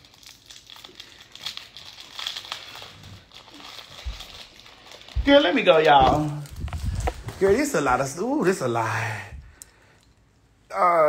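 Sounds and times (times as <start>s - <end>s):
ornaments crinkling and clicking: 0.0s - 7.7s, 9.5s - 10.4s.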